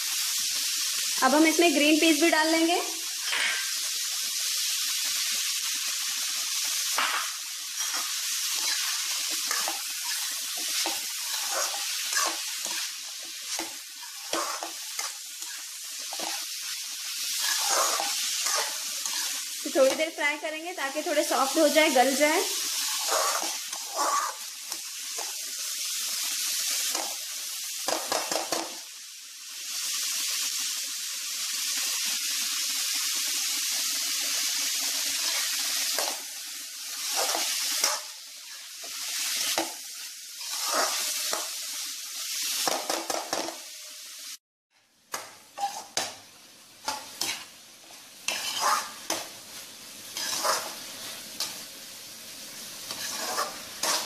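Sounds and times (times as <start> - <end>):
vegetables sizzling in a wok: 0.0 - 54.0.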